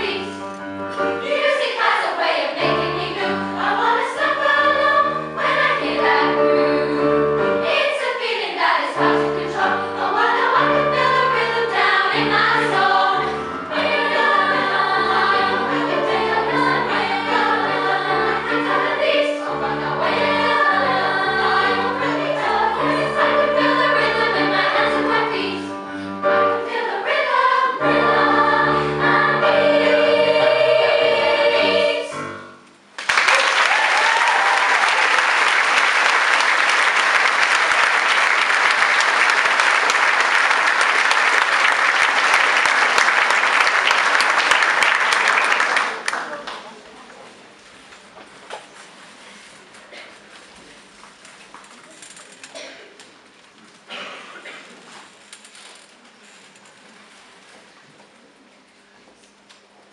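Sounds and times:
piano accompaniment: 0:00.0 - 0:08.0, 0:08.9 - 0:32.9
girls' choir singing: 0:00.0 - 0:32.5
audience applauding: 0:33.0 - 0:46.7.

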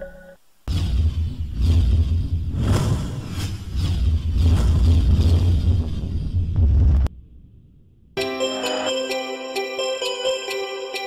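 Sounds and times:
deep steady rumble: 0:01.3 - 0:08.2
whooshes: 0:01.6 - 0:07.1.

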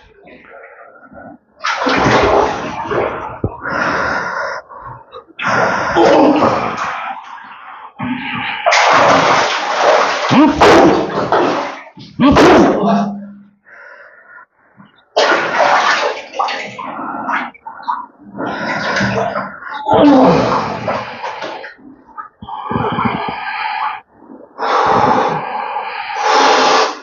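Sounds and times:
man gasping and groaning: 0:03.7 - 0:06.9.

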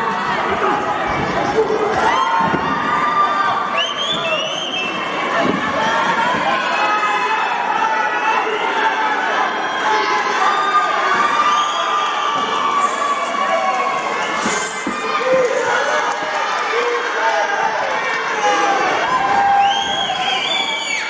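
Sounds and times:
crowd cheering and shouting: 0:00.0 - 0:21.0.

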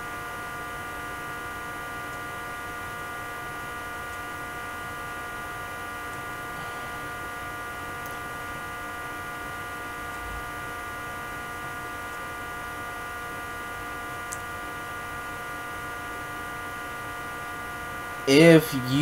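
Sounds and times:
electrical hum: 0:00.0 - 0:19.0.

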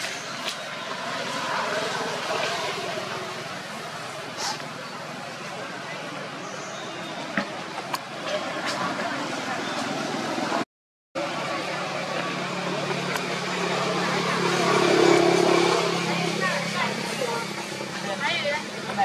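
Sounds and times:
vehicle engine passing by: 0:11.2 - 0:18.3.

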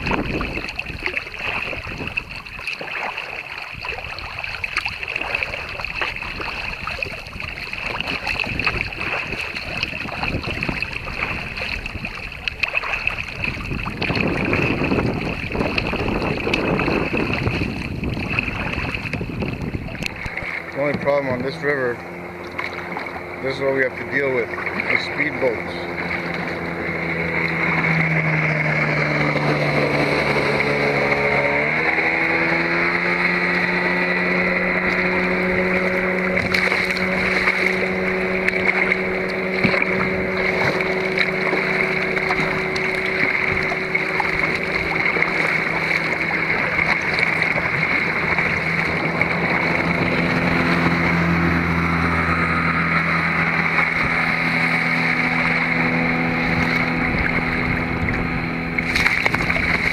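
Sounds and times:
speedboat engine droning: 0:00.0 - 0:59.9.

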